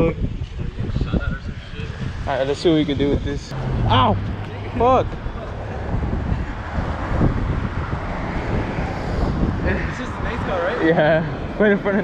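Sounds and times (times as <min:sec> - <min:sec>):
street traffic: 0:00.0 - 0:12.0
wind buffeting microphone: 0:00.0 - 0:12.0.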